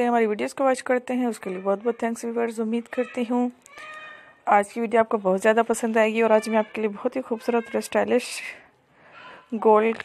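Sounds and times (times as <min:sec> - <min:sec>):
woman speaking: 0:00.0 - 0:03.8, 0:04.4 - 0:10.0.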